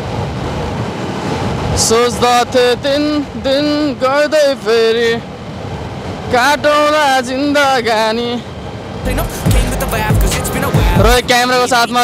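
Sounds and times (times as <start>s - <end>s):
person singing long notes: 9.1s - 11.2s.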